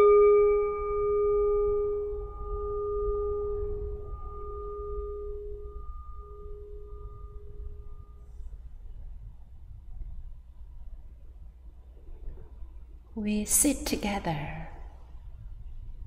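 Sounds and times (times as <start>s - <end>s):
meditation bell ringing: 0.0s - 8.6s.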